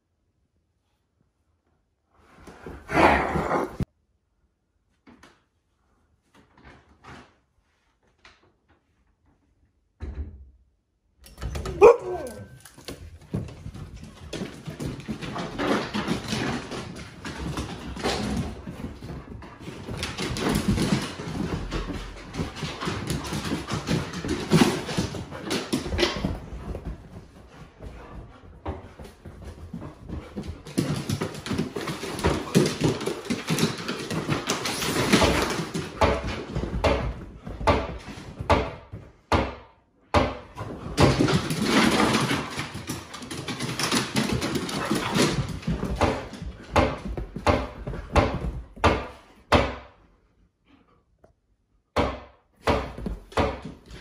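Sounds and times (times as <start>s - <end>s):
dogs playing: 2.2s - 3.9s, 11.2s - 39.3s, 40.2s - 51.3s, 52.6s - 54.0s
claws clattering on wooden floor: 40.6s - 48.8s.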